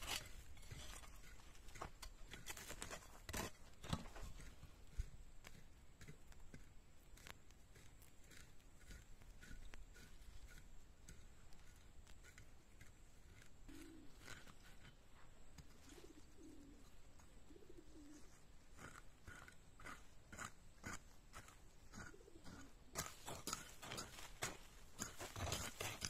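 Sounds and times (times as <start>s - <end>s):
hand hoe scraping dry soil: 0.0s - 26.0s
faint low bird calls: 13.2s - 18.6s.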